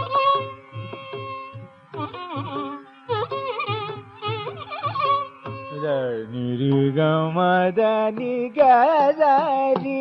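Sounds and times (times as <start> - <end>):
violin: 0.0 - 10.0
man singing: 5.7 - 10.0.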